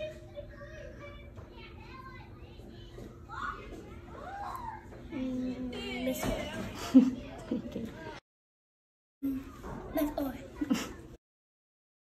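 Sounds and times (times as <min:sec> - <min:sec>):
faint children chattering: 0:00.0 - 0:08.2, 0:09.2 - 0:11.2.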